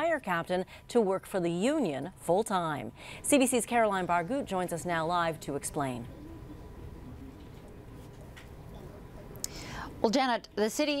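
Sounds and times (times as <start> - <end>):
broadcast background hum: 0.0 - 11.0
intake of breath: 3.0 - 3.2, 9.4 - 10.0.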